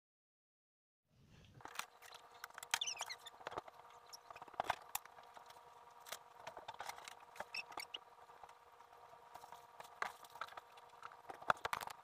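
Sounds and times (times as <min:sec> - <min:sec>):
faint steady hum: 0:01.1 - 0:12.0.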